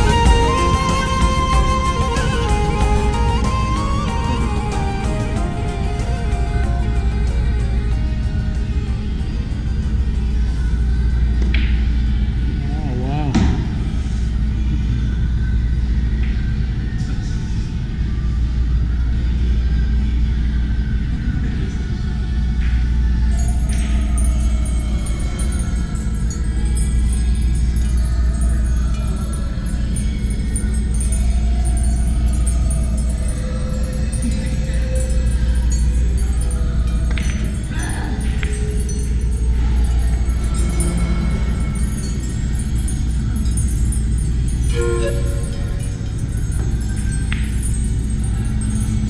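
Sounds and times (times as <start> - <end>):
music with steady bass: 0.0 - 10.4.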